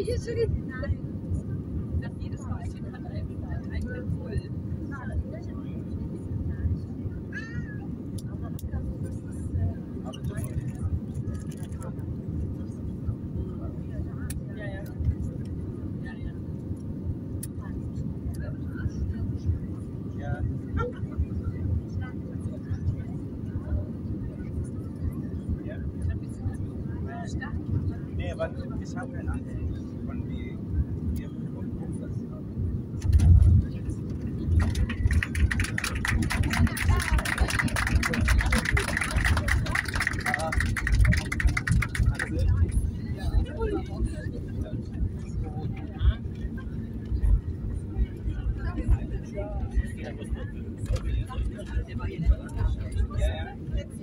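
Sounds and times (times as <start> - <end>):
airliner cabin engine noise: 0.0 - 54.0.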